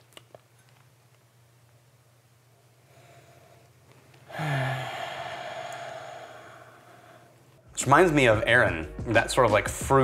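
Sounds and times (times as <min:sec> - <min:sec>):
man humming: 0:04.3 - 0:06.8
man sighing: 0:04.3 - 0:07.4.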